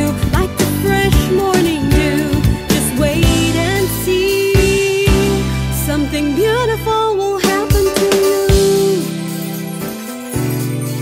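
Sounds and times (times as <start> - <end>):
pop song with gliding melody: 0.0 - 11.0.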